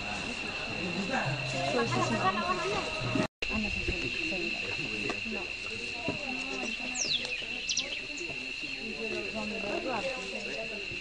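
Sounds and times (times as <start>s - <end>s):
high-pitched drone: 0.0s - 3.8s
people talking: 0.0s - 11.0s.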